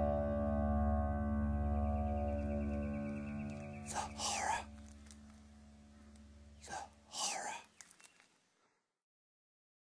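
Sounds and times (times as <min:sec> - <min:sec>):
low musical drone: 0:00.0 - 0:06.7
person whispering: 0:03.8 - 0:04.9, 0:06.6 - 0:08.0.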